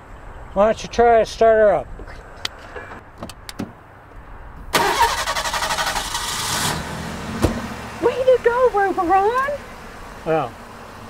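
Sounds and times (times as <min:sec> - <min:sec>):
starter cranking engine: 0:04.8 - 0:06.8
car engine running: 0:04.8 - 0:11.0.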